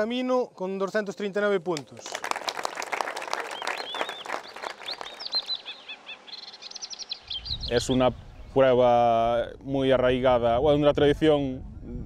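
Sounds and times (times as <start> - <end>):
crowd clapping: 1.6 - 5.8
birds chirping: 1.9 - 8.8.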